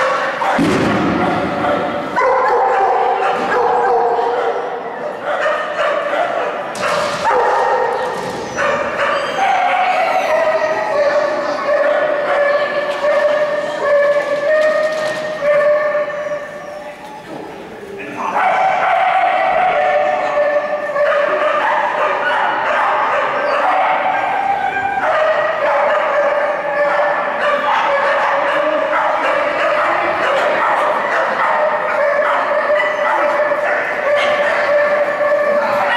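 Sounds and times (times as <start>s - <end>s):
dog barking and whining: 1.6s - 16.9s, 18.3s - 35.9s.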